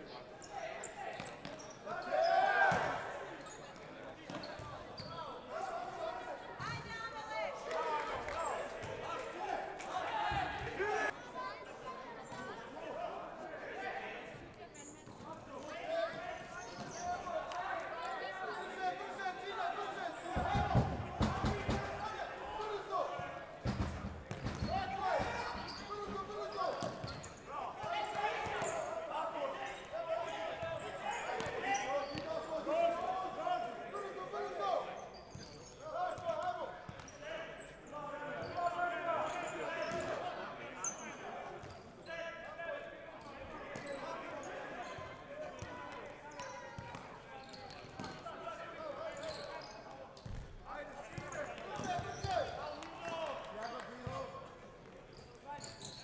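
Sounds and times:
players shouting in a hall: 0.0s - 3.6s, 4.6s - 14.4s, 15.5s - 23.9s, 24.5s - 49.8s.

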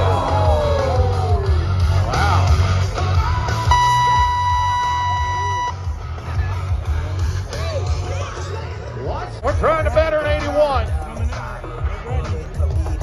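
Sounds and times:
crowd yelling: 0.0s - 2.6s
buzzer tone: 3.7s - 6.0s.

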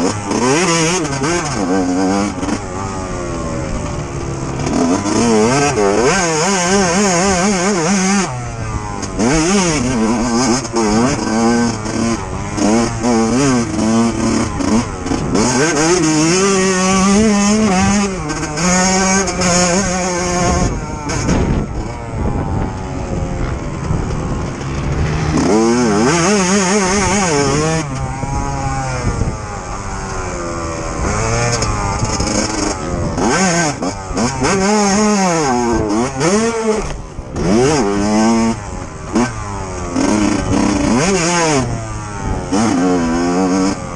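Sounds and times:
dirt bike engine at high revs: 0.0s - 43.9s.

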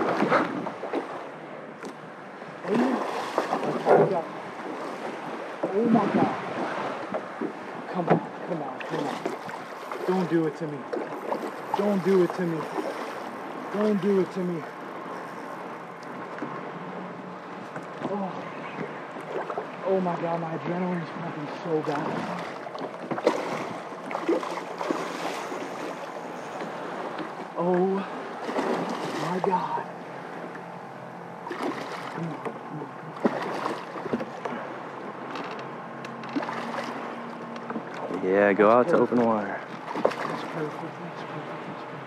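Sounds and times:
water lapping around boat: 0.0s - 42.0s
fish splashing water: 21.8s - 29.6s, 31.4s - 34.6s, 39.8s - 40.7s.

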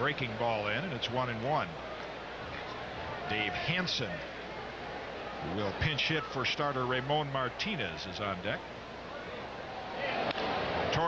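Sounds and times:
ballpark crowd noise: 0.0s - 11.0s.

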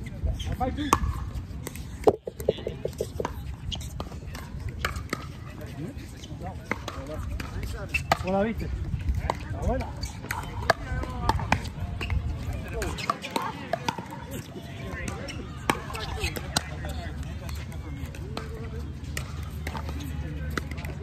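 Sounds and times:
people talking: 1.9s - 3.6s
paddles striking plastic ball: 2.0s - 3.4s.

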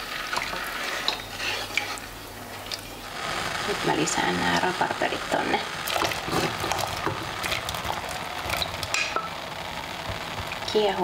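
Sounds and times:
syrup boiling and bubbling: 0.0s - 11.0s.

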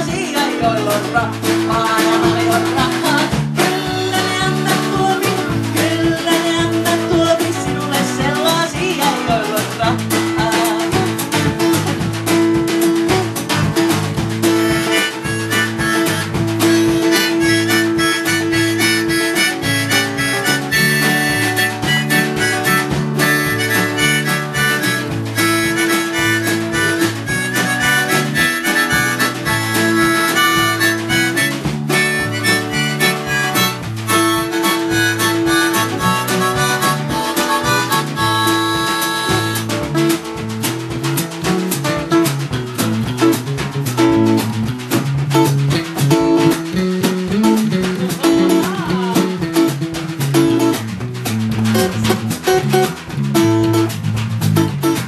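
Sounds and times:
acoustic guitar: 0.0s - 55.0s
bass guitar: 0.0s - 55.0s
drums keeping a beat: 0.0s - 55.0s
harmonica solo: 14.4s - 40.3s.

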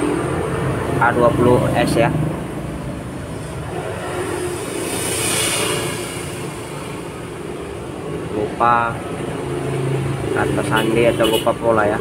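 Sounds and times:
road traffic noise: 0.0s - 12.0s
vehicle passing: 0.0s - 12.0s.

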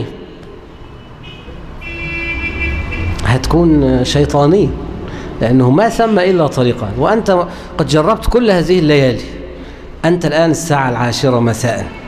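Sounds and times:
low traffic rumble: 0.0s - 12.0s
vehicle horn: 0.8s - 3.3s.

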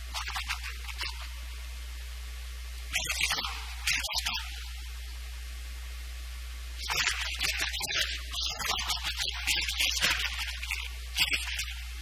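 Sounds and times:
low electrical hum and hiss: 0.0s - 12.0s.

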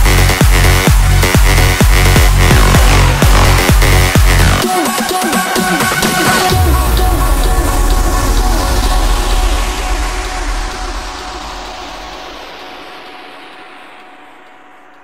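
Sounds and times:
deep bass note: 0.0s - 4.7s.

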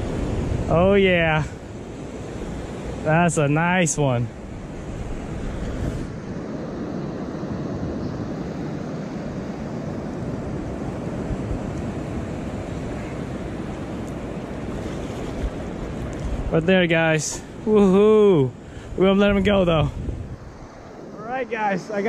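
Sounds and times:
ocean surf washing in: 0.0s - 22.0s
wind buffeting microphone: 0.0s - 22.0s.

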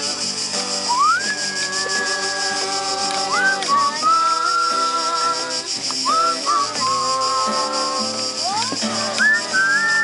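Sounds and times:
acoustic guitar: 0.0s - 10.0s
person whistling a melody: 0.8s - 10.0s.

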